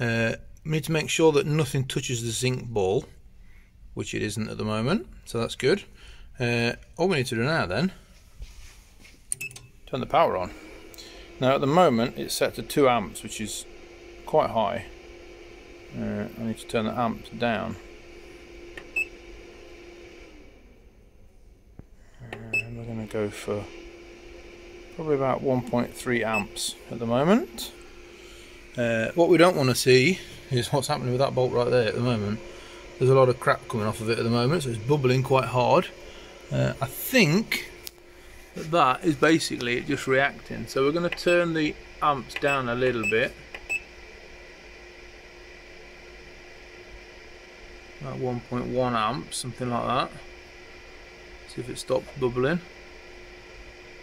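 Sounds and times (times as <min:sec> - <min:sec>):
faint steady hum: 0:00.0 - 0:54.0
power supply beep: 0:09.4 - 0:09.7, 0:18.9 - 0:19.2, 0:22.4 - 0:22.8, 0:26.3 - 0:26.6, 0:41.1 - 0:41.5, 0:42.5 - 0:43.9.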